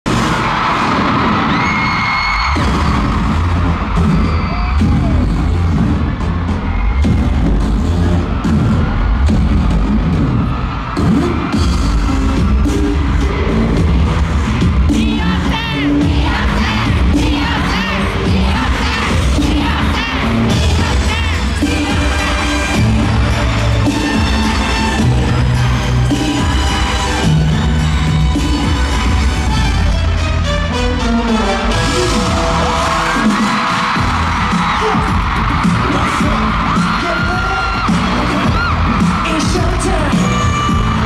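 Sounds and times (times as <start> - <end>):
pop dance music with heavy bass: 0.1 - 30.2, 31.0 - 41.0
crowd cheering and screaming: 0.1 - 41.0.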